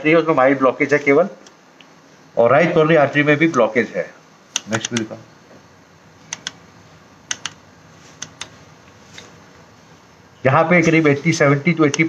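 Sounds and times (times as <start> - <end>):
key clicks: 4.5 - 5.2, 6.3 - 6.6, 7.3 - 7.6, 8.2 - 8.6.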